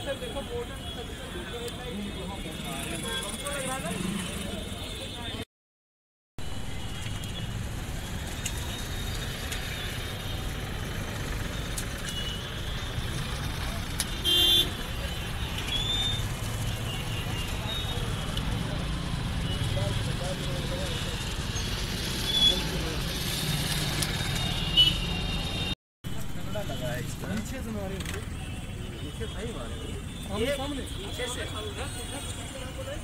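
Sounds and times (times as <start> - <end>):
road traffic noise: 0.0 - 5.5, 6.4 - 33.0
vehicle horn honk: 14.2 - 14.8.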